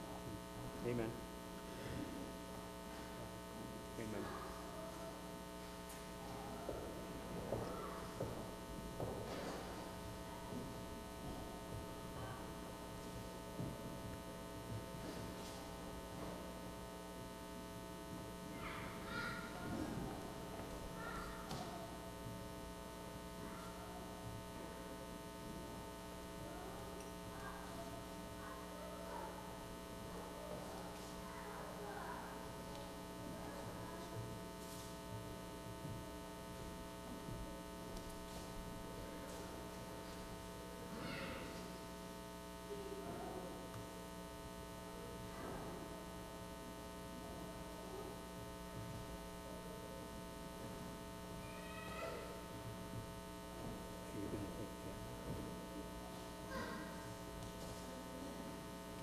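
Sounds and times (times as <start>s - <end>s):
steady electrical hum: 0.0s - 59.0s.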